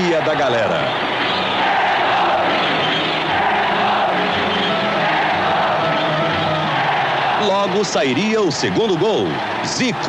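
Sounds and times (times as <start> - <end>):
stadium crowd cheering and chanting: 0.0 - 10.0.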